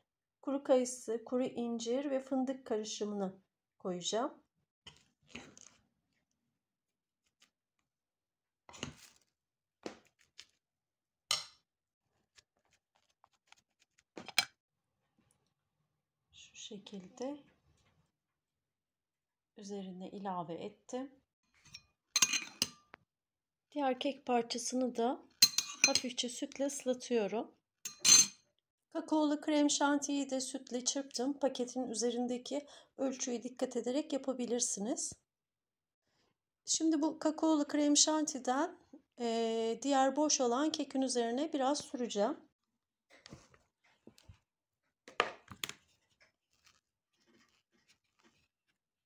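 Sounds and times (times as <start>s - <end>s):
metal spoon clinking on dish: 21.7s - 22.8s, 25.4s - 26.1s, 27.9s - 28.4s
knife scraping cream: 46.5s - 48.8s.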